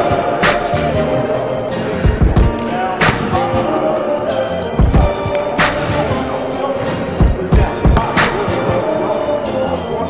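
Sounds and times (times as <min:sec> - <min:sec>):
music with heavy beat: 0:00.0 - 0:09.6
snare hit: 0:03.0 - 0:03.4
deep bass thumps: 0:04.8 - 0:05.2.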